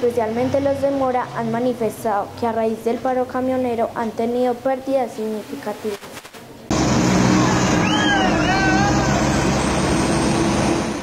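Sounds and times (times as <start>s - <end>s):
truck engine and road drone: 0.0s - 4.5s, 6.6s - 11.0s.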